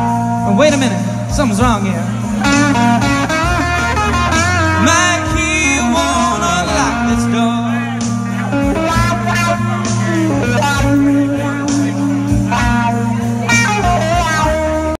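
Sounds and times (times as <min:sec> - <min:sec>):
electric guitar blues lead: 0:00.0 - 0:15.0.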